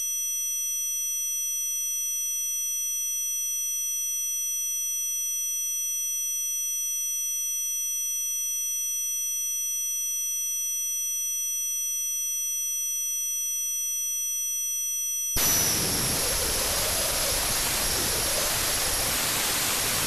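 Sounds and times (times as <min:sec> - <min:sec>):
high-pitched electronic drone tones: 0:15.4 - 0:20.0.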